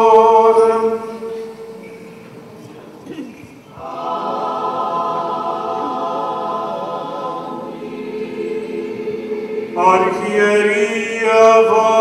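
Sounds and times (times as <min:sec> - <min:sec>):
choir singing chant: 0:00.0 - 0:01.8, 0:03.7 - 0:12.0.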